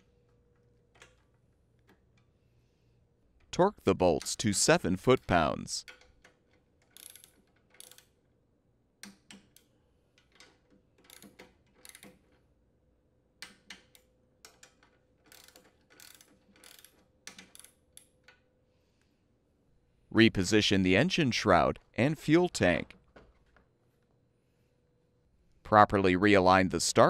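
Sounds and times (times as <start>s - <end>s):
torque wrench ratchet clicking: 6.8s - 8.2s, 11.1s - 12.2s, 15.3s - 18.1s.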